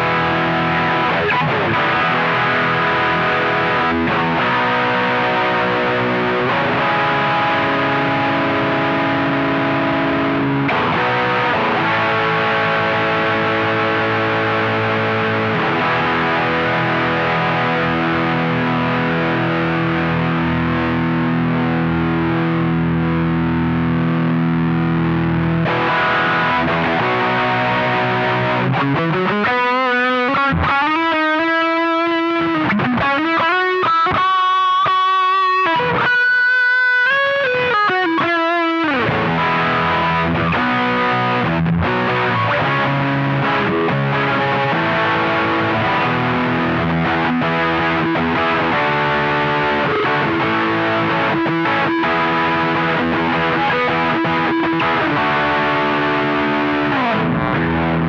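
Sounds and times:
distorted electric guitar: 0.0s - 58.0s.

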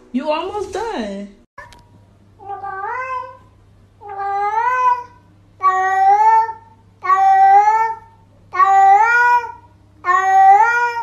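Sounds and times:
cat meowing: 2.4s - 3.4s, 4.0s - 8.0s, 8.6s - 11.0s.

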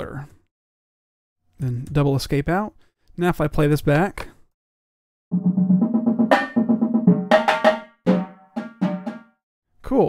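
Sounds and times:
bass drums: 5.3s - 9.3s
snare drums: 5.3s - 9.4s
tenor drums: 5.3s - 9.4s.

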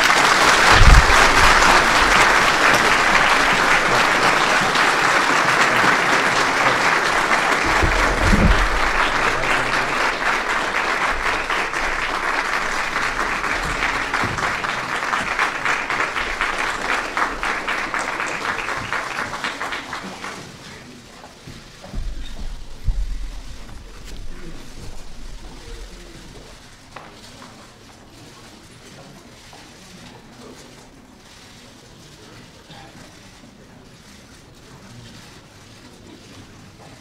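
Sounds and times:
audience applauding: 0.0s - 21.0s
brief low thud: 0.7s - 2.1s.

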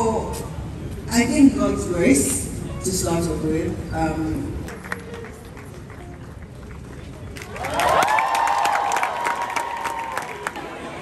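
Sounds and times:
audience applause: 4.7s - 11.0s.

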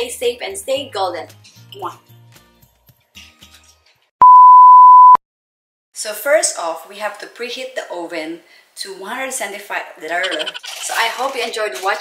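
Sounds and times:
electronic beep tone: 4.2s - 5.2s, 10.2s - 10.8s.

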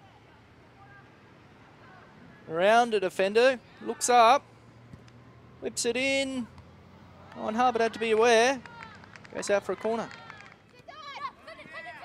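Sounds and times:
distant players shouting: 0.1s - 12.0s.

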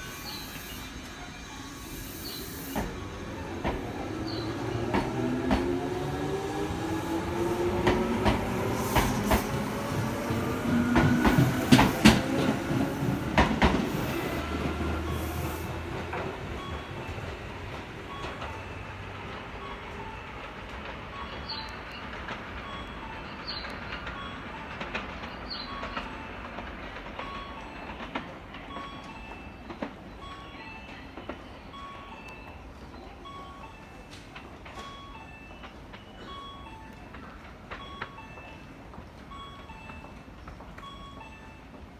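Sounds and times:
train wheels clacking over rail joints: 2.7s - 30.0s.

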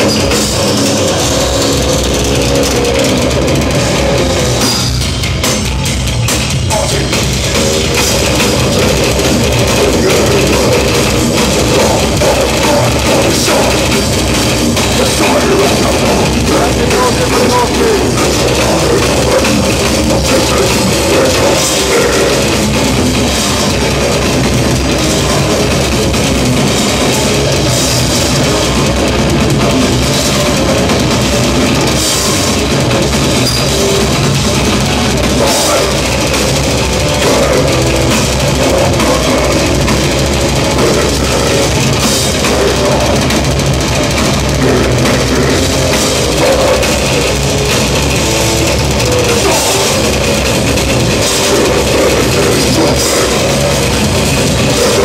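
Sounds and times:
metal band playing live: 0.0s - 55.0s.

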